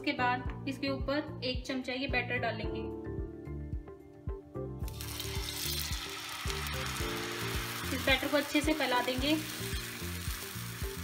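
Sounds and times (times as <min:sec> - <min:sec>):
batter sizzling on hot griddle: 0:04.8 - 0:11.0.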